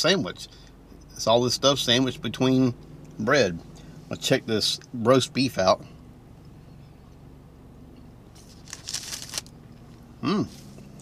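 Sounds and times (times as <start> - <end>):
steady low hum: 0.0 - 11.0
close-up crackly chewing: 8.3 - 11.0.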